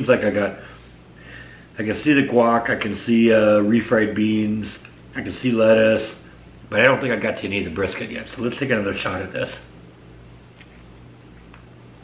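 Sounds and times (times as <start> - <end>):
faint background hiss: 0.0 - 12.0
steady low hum: 0.0 - 12.0.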